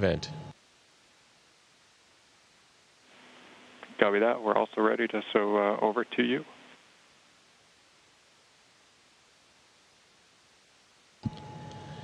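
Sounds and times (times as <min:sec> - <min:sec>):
steady hum and hiss: 0:00.0 - 0:12.0.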